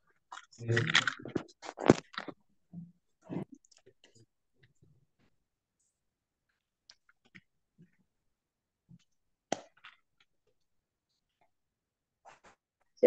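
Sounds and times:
headphones being handled: 0.3 - 2.4.

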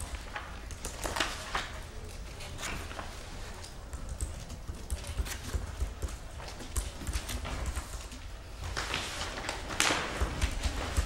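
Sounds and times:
paper rustling: 0.0 - 11.0.

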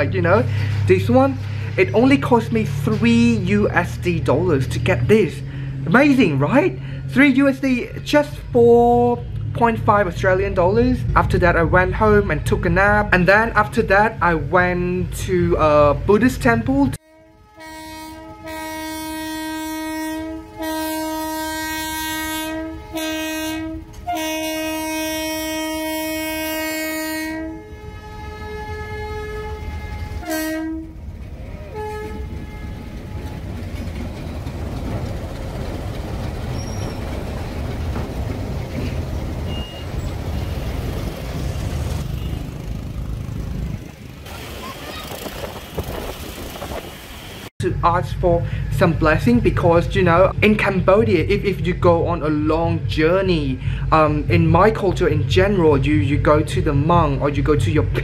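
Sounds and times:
freight train rumbling past: 0.0 - 58.0
diesel locomotive horn blasts: 17.0 - 33.6.

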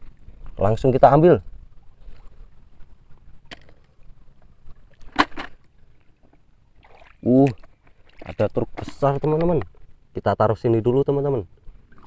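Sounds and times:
faint low water rush: 0.0 - 12.0
hands splashing river water: 6.8 - 9.3.

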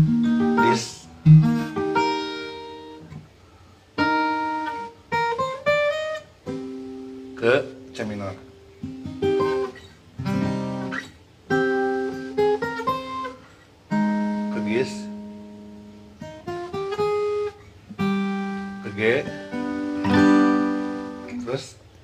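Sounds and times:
acoustic guitar chords and runs: 0.0 - 22.0.

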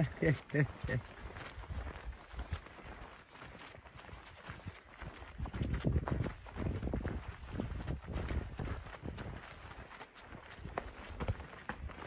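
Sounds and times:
footsteps on wet grass and mud: 0.0 - 12.0.

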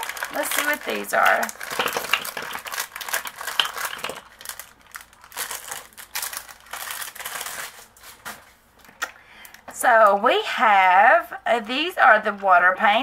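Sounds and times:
plastic bag crinkling: 0.0 - 8.5.

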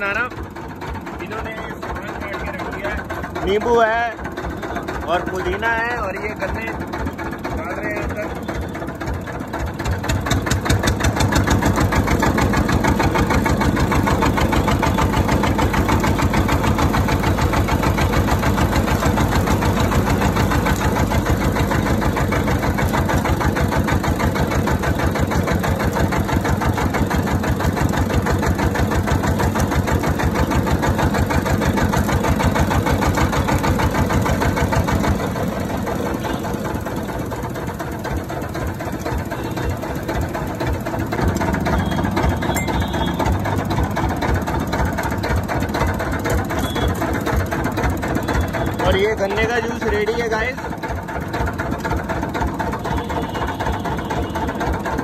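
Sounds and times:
sugarcane crusher running: 0.0 - 55.0.

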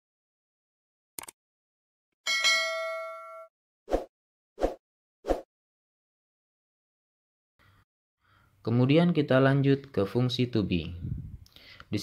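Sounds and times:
notification bell ding: 2.3 - 3.5.

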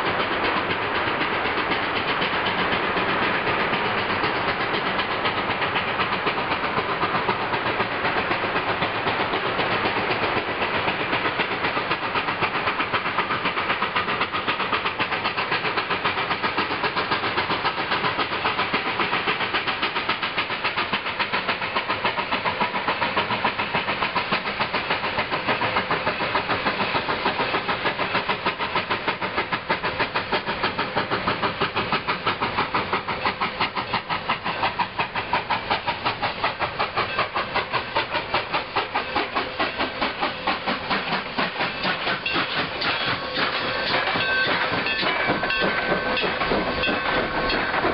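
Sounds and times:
steam locomotive exhaust chuffing: 0.0 - 47.9.

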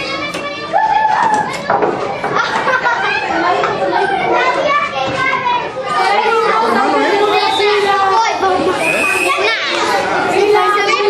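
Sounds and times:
children talking and shouting: 0.0 - 11.0.

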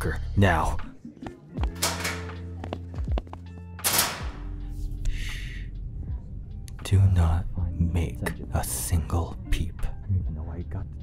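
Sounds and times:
soft lofi music: 0.0 - 11.0
metal locker door shutting: 1.8 - 2.4, 3.8 - 4.4.

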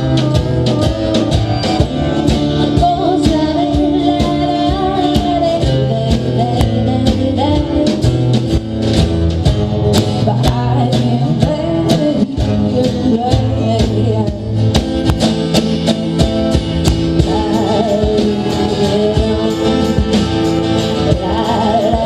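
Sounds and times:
person singing: 0.0 - 8.4, 10.0 - 14.8, 17.0 - 22.0
acoustic guitars strummed: 0.0 - 22.0
drum beat: 13.3 - 22.0.

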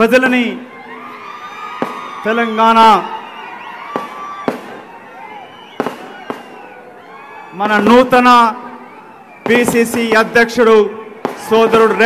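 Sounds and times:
large crowd noise: 0.0 - 12.0
firecrackers cracking: 1.7 - 2.3, 3.8 - 6.8, 11.1 - 12.0.

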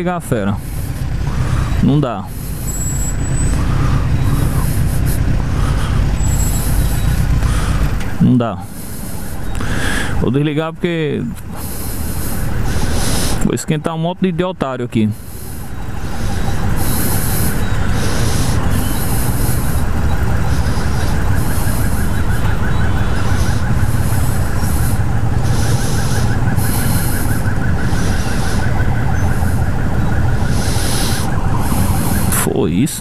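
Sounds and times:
motorcycle engines idling: 0.0 - 33.0.

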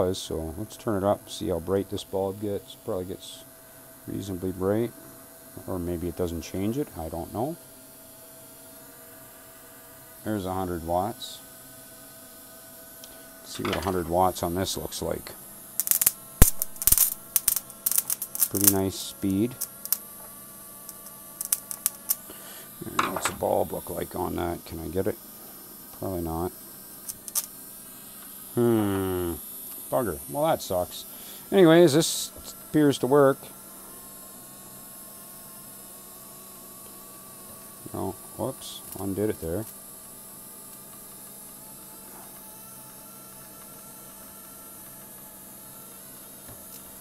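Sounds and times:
faint electrical hum: 0.0 - 47.0
faint high hiss: 13.0 - 20.1, 28.1 - 33.5
spark gap snapping and crackling: 15.7 - 24.5, 27.0 - 31.0.

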